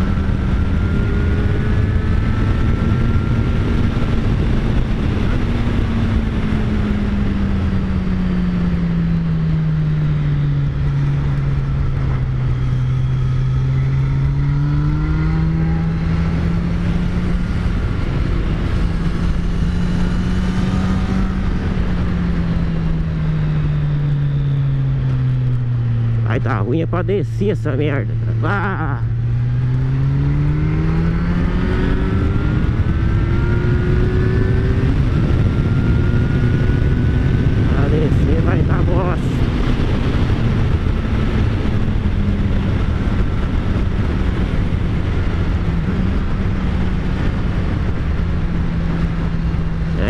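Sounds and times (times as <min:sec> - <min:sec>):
motorcycle engine running: 0:00.0 - 0:50.0
wind rush on microphone: 0:00.0 - 0:50.0.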